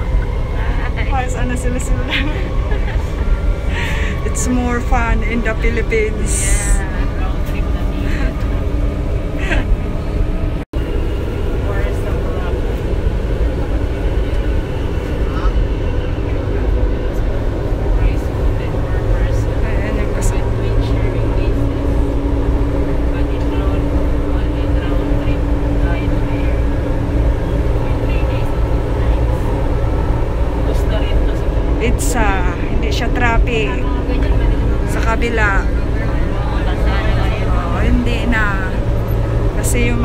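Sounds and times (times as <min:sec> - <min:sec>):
steady hum: 0:00.0 - 0:40.0
train cabin rumble: 0:00.0 - 0:40.0.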